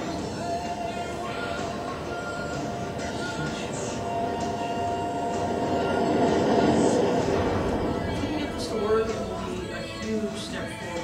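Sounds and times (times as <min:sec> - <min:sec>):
rocket engine rushing over loudspeakers: 0:01.0 - 0:11.0.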